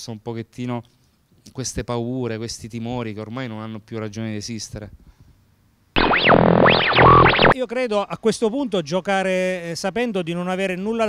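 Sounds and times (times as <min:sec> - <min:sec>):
synthesized jingle with pitch sweeps: 0:06.0 - 0:07.6.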